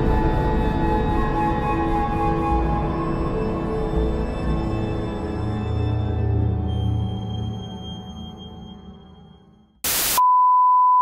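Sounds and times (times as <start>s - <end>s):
music: 0.0s - 9.8s
static hiss burst: 9.8s - 10.2s.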